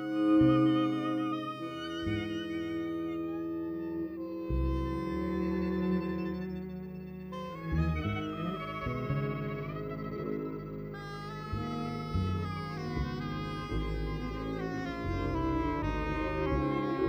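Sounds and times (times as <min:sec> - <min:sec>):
cello: 0:00.0 - 0:17.0
double basses playing deep notes: 0:00.0 - 0:17.0
violin: 0:00.0 - 0:17.0.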